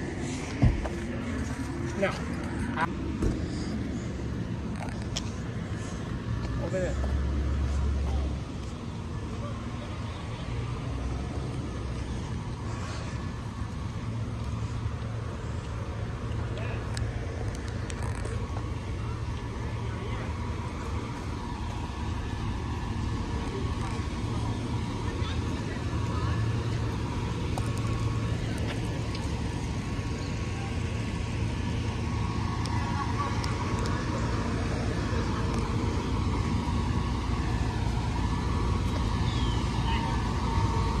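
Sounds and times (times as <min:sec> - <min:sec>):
fire engines idling: 0:00.0 - 0:41.0.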